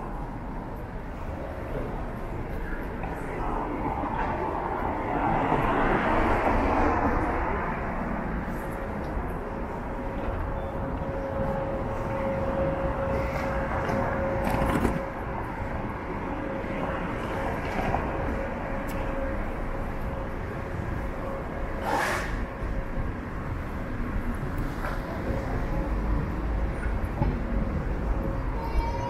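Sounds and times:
road traffic: 0.0s - 29.0s.

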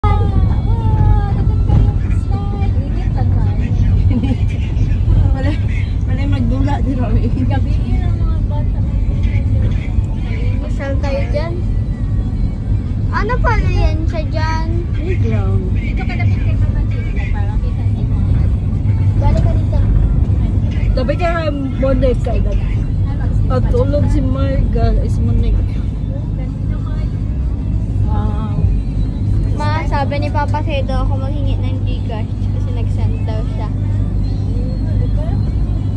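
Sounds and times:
people talking: 0.0s - 11.6s, 13.1s - 27.2s, 28.0s - 28.8s, 29.4s - 35.5s
faint voices: 0.0s - 35.9s
vehicle engine and tyres rumbling: 0.0s - 35.9s.

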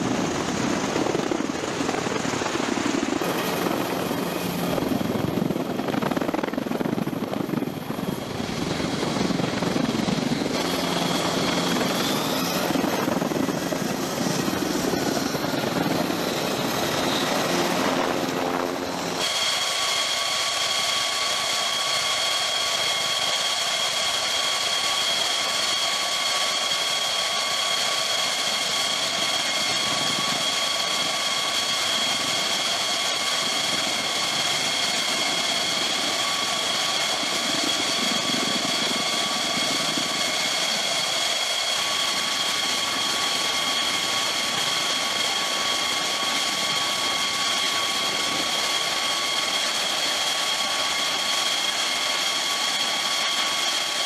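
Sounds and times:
aircraft rotor and engine rumbling: 0.0s - 54.0s
jet engine whine at idle: 0.0s - 54.0s.

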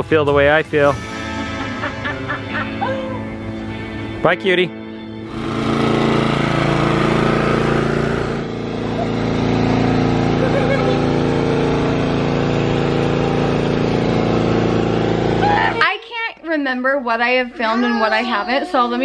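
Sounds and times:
small engine running: 5.2s - 15.8s.

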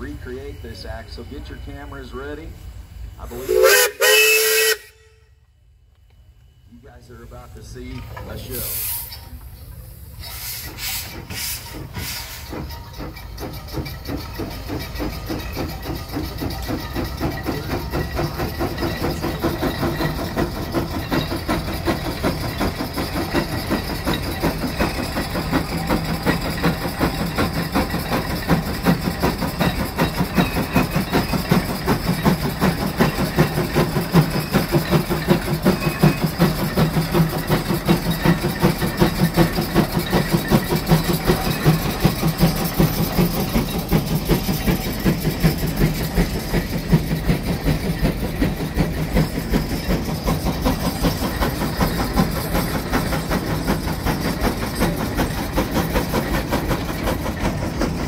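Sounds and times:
steam engine exhaust chuffing: 0.0s - 5.2s, 6.6s - 58.0s.

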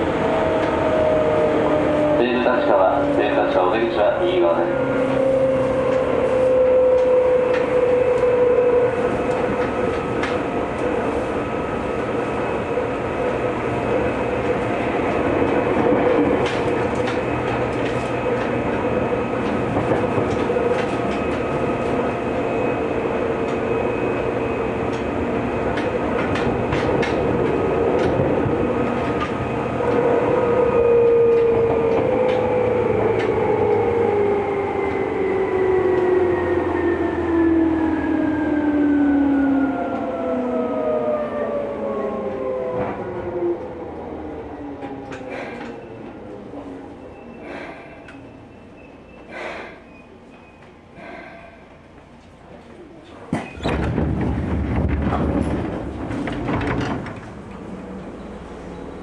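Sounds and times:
train motor whine: 0.2s - 43.8s
clicks from rail joints: 9.3s - 10.9s, 14.4s - 18.8s, 19.4s - 21.9s, 25.7s - 30.1s, 44.8s - 46.2s, 52.0s - 57.7s.

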